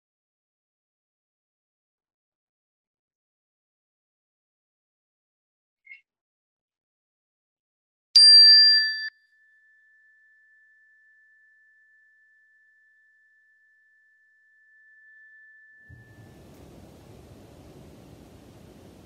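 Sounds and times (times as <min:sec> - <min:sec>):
small bell ringing: 0:08.2 - 0:11.8
faint room noise: 0:15.9 - 0:19.0.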